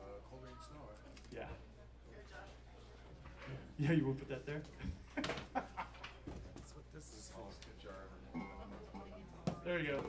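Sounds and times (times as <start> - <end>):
background talk: 0.0 - 10.0
faint music: 6.6 - 10.0.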